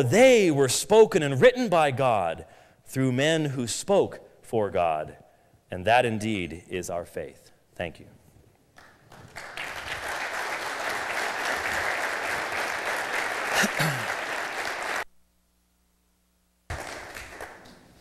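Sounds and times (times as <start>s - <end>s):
faint hum: 4.2s - 18.0s
audience applauding: 8.8s - 15.1s, 16.7s - 18.0s.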